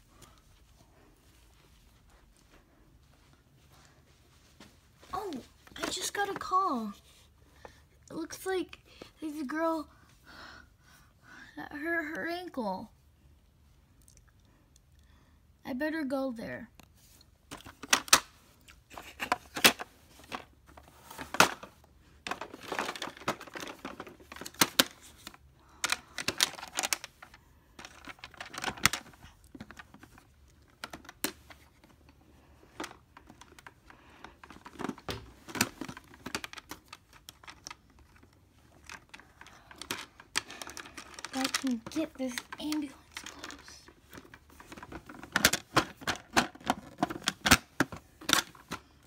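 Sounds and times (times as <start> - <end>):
plastic toys clicking and knocking: 17.5 - 18.3, 19.0 - 20.5, 21.2 - 32.0, 32.7 - 49.0.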